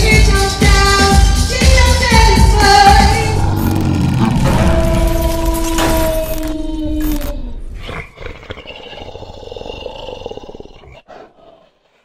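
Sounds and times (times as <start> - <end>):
growling animal-like roar: 3.1 - 6.5, 7.1 - 12.0.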